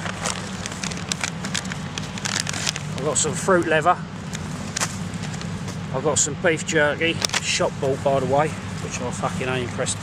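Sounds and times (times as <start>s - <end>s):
plastic packet crinkling: 0.0s - 3.3s
low factory hum: 0.0s - 10.0s.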